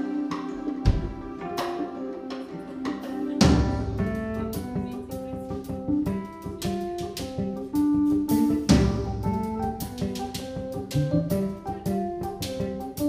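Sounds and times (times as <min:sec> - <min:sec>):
drum kit: 0:00.0 - 0:13.0
guitar notes: 0:00.0 - 0:13.0
keyboards: 0:00.0 - 0:13.0
heavy drum hit: 0:03.4 - 0:06.2, 0:08.3 - 0:10.0.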